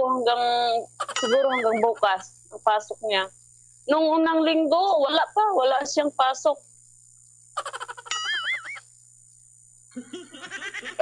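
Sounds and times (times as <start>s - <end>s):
warbling high tone: 1.2s - 2.0s, 8.1s - 8.8s
laughter: 7.6s - 8.6s, 10.0s - 11.0s.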